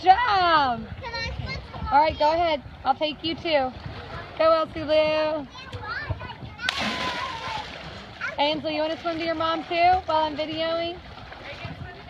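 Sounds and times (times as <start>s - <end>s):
splash into lake water: 6.6s - 8.4s.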